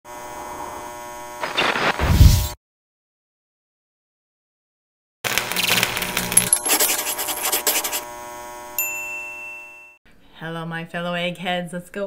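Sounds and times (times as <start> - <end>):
bright ding: 8.8 - 10.0.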